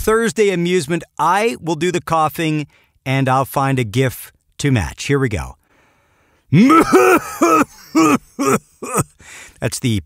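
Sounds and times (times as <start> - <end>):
man hacking coughs: 6.6 - 9.2.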